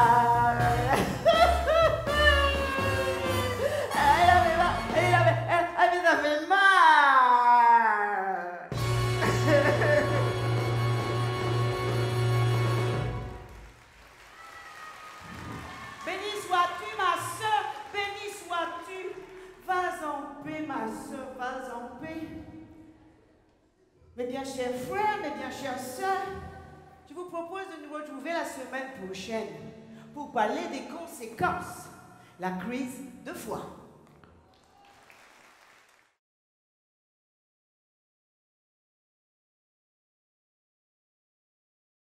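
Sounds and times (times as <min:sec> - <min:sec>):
faint audience applause: 0:13.0 - 0:19.7, 0:34.4 - 0:36.2.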